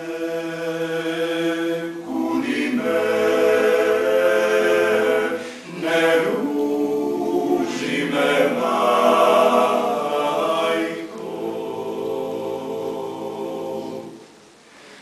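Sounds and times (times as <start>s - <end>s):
male choir singing a cappella: 0.0s - 14.3s.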